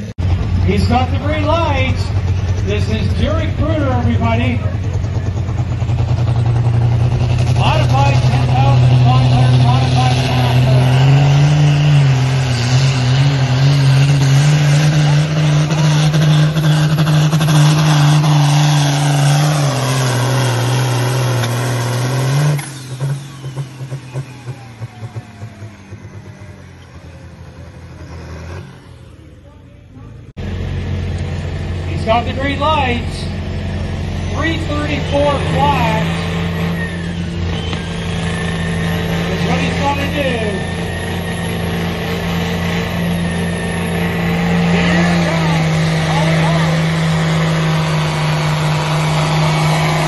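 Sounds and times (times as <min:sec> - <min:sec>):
tractor diesel engine droning: 0:00.0 - 0:50.0.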